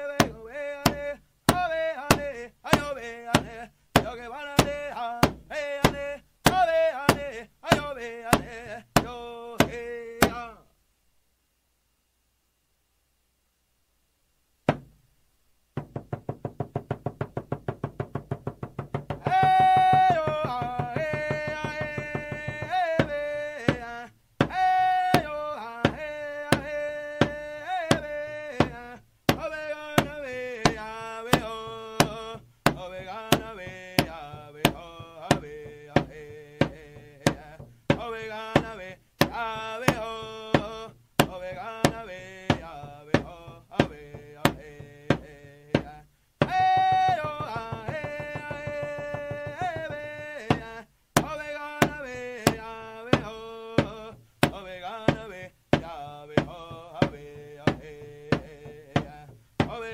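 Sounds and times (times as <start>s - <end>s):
drum beaten: 15.8s - 25.3s, 25.9s - 59.9s
high voice singing: 19.1s - 59.9s.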